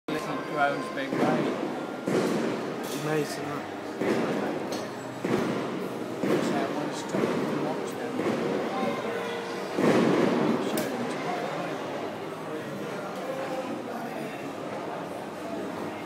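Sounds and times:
indistinct chatter: 0.1s - 16.0s
muffled fireworks thuds: 2.0s - 2.6s, 4.0s - 4.4s, 5.2s - 6.6s, 9.8s - 10.5s.

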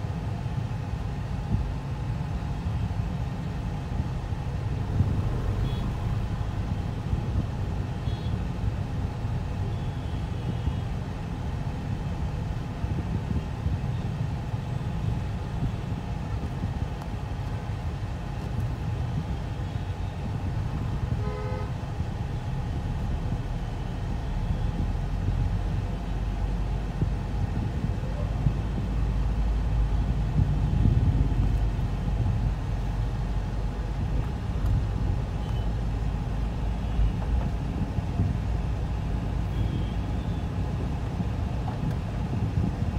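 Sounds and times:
car road and engine rumble: 0.0s - 42.9s
vehicle horn honking: 5.5s - 6.2s, 21.1s - 21.8s.

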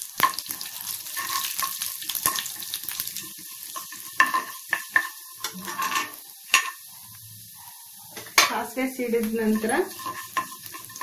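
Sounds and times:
seeds sizzling in hot oil: 0.0s - 11.0s
spatula tapping pan: 0.2s - 6.8s, 8.1s - 11.0s.

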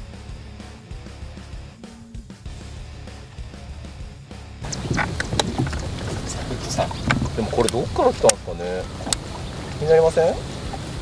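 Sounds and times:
soft background music: 2.4s - 10.4s
wind: 2.8s - 11.0s
sharp clicks and knocks: 4.6s - 8.4s, 9.0s - 9.8s
water noise: 4.6s - 11.0s.

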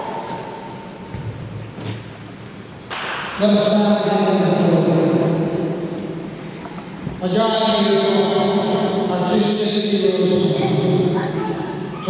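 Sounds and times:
reverberant crowd room noise: 0.0s - 12.0s.

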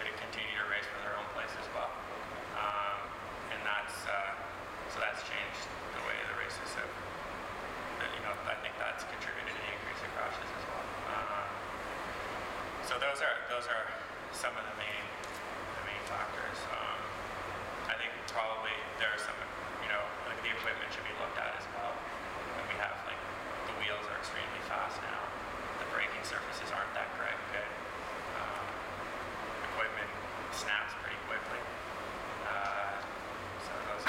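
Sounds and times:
man speaking: 0.0s - 7.0s, 8.0s - 11.6s, 12.8s - 15.2s, 15.8s - 17.1s, 17.9s - 22.0s, 22.6s - 27.8s, 28.4s - 28.8s, 29.7s - 31.7s, 32.4s - 33.0s, 33.6s - 34.0s
low room hum: 0.0s - 34.0s
man speaking haltingly: 2.6s - 6.9s.

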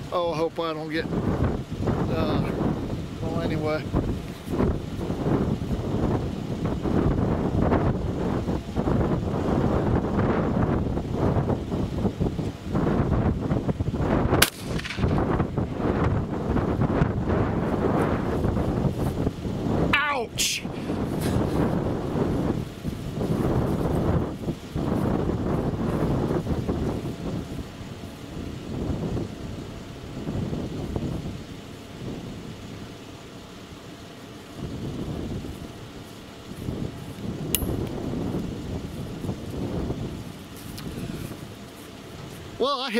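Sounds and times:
wind buffeting microphone: 0.0s - 33.1s, 34.4s - 42.6s
shotgun shot: 14.4s - 15.4s.

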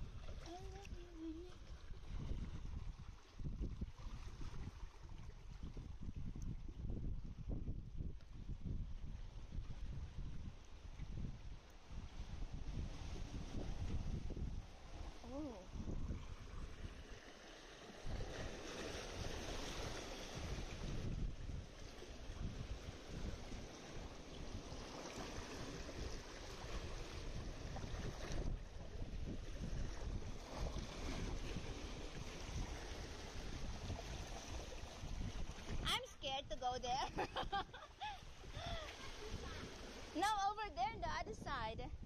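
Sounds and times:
seawater lapping against rocks: 0.0s - 6.8s, 9.1s - 41.8s
wind buffeting microphone: 0.0s - 42.0s.

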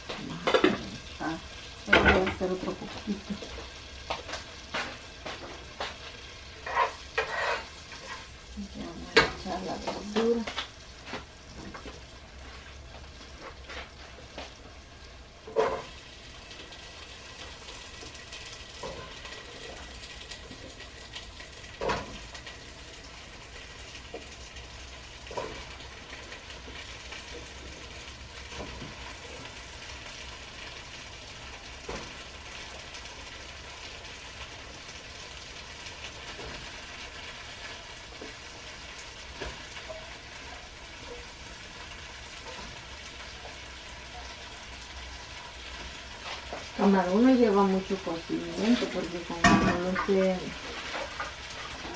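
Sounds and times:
vegetables sizzling in a pan: 0.0s - 51.9s.

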